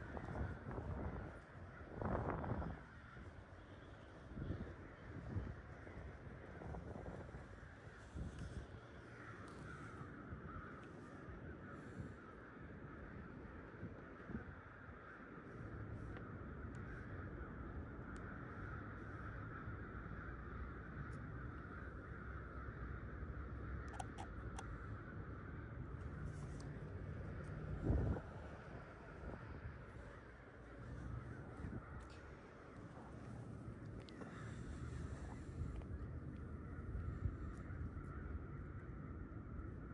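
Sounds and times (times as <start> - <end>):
crows cawing: 0.0 - 39.9
faint bird calls: 0.0 - 39.9.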